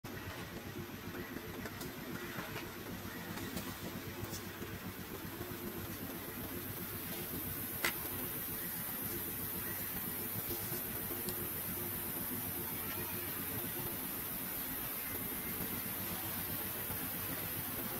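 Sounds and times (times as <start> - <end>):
low engine hum: 0.0 - 17.9.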